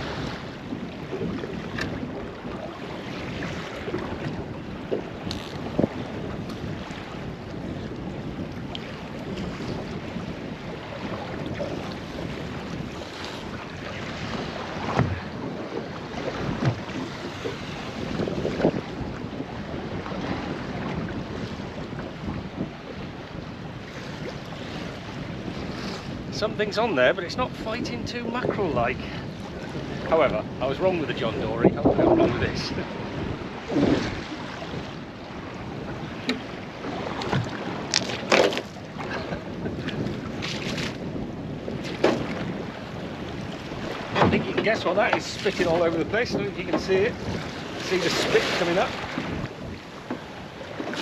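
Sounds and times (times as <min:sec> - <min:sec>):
choppy sea against boat hull: 0:00.0 - 0:51.0
water slapping hull: 0:00.0 - 0:51.0
wind buffeting microphone: 0:00.0 - 0:51.0.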